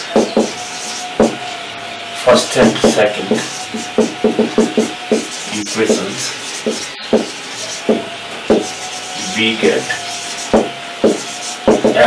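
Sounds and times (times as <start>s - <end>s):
marker pen writing on whiteboard: 0.1s - 1.4s, 2.6s - 12.0s.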